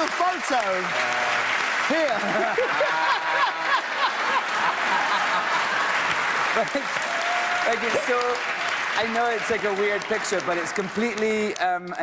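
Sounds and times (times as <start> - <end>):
audience laughing and applauding: 0.0 - 11.9
high whoops of laughter: 2.2 - 5.9.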